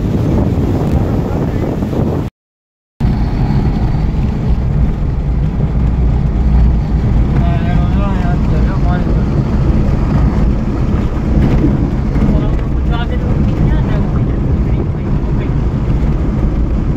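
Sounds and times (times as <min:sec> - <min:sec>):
car engine and road rumble: 0:00.0 - 0:02.3, 0:03.0 - 0:16.9.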